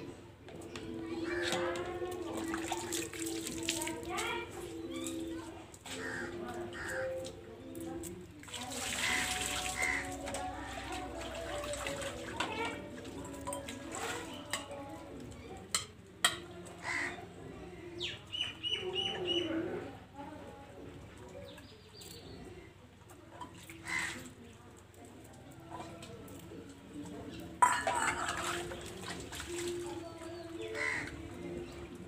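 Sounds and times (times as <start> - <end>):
water splashing onto steel plate: 1.3 - 4.6, 8.0 - 16.5, 23.4 - 24.5, 27.6 - 32.0.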